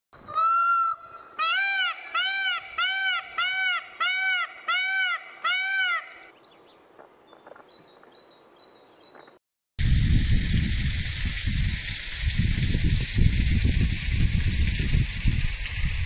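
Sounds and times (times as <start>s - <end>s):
peacock calling: 0.2s - 6.3s.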